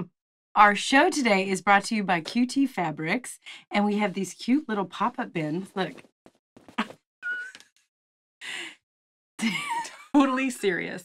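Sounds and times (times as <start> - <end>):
woman laughing: 9.4 - 10.4.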